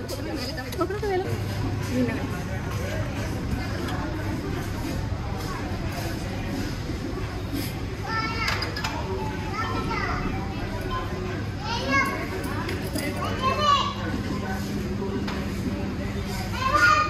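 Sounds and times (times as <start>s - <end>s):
indoor chatter: 0.0s - 17.0s.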